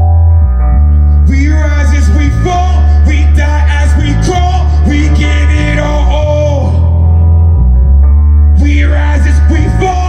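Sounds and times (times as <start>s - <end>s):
heavy bass line: 0.0s - 10.0s
loud hip-hop music: 1.2s - 7.3s, 8.4s - 10.0s.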